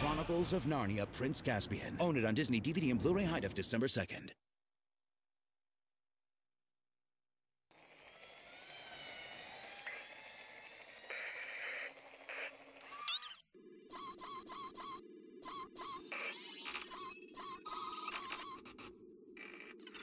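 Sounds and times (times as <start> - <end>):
hissing windy ambience: 7.9 - 12.8
gliding whistles: 8.0 - 18.9
short robotic chirps: 11.2 - 18.8.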